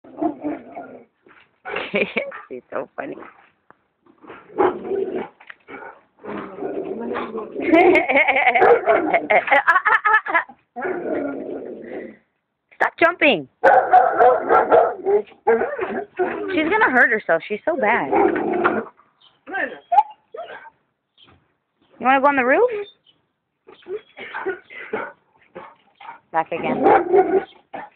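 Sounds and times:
dog barking: 0:08.6 - 0:09.0, 0:13.6 - 0:16.0, 0:24.2 - 0:27.9.

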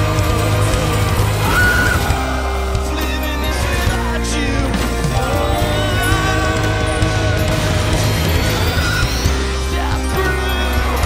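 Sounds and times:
live rock band playing: 0:00.0 - 0:11.0
rising synth tone: 0:00.0 - 0:11.0.

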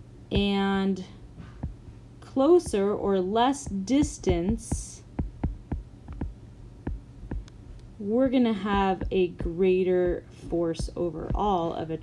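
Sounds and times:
stylus tapping on tablet screen: 0:00.4 - 0:00.6, 0:01.4 - 0:01.8, 0:03.6 - 0:07.6, 0:08.6 - 0:11.7.

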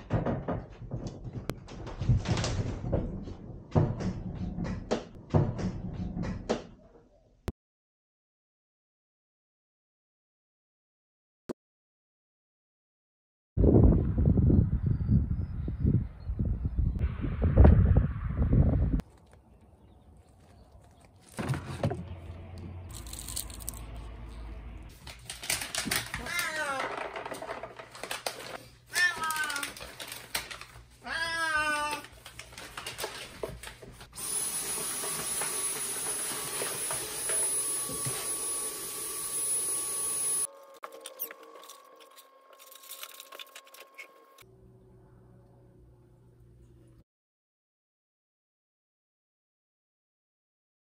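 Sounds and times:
loud low rumble: 0:17.0 - 0:19.0, 0:22.0 - 0:24.9
cats meowing: 0:26.2 - 0:27.0, 0:28.9 - 0:29.8, 0:31.0 - 0:32.2.

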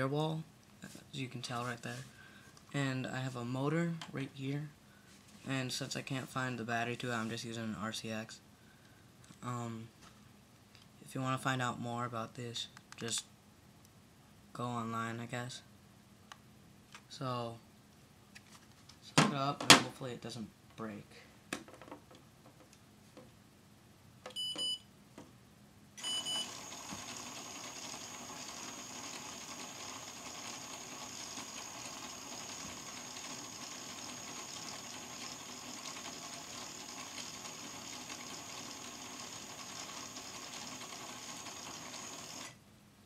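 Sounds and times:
electronic beeps: 0:26.0 - 0:26.5
motor whining driving plastic gears: 0:26.0 - 0:42.6.

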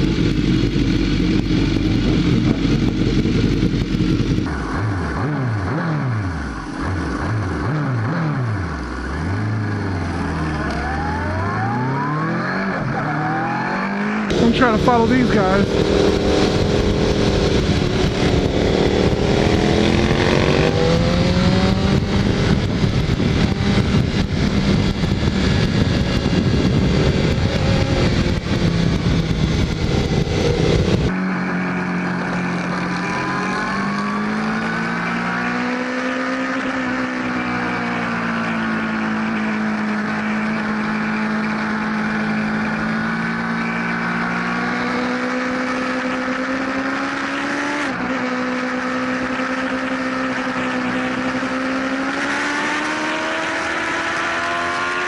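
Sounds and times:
motorcycle engine: 0:00.0 - 0:55.0
wind noise on microphone: 0:15.5 - 0:31.2.

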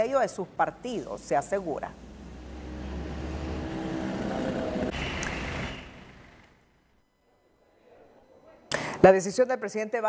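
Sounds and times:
motor vehicle engine running: 0:01.9 - 0:06.7.

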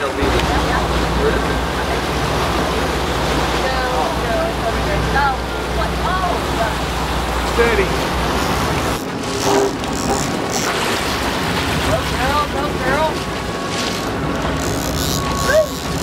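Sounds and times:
boat engine running: 0:00.0 - 0:16.0
water washing along hull: 0:00.0 - 0:16.0.

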